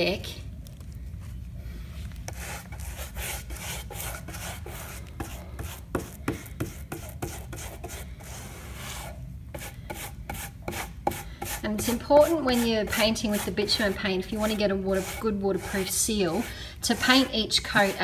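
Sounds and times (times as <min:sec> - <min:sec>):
paintbrush scratchy rubbing: 0:02.3 - 0:18.0.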